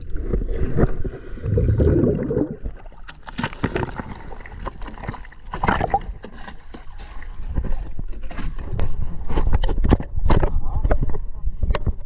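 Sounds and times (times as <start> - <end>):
water lapping against boat hull: 0.0 - 12.0.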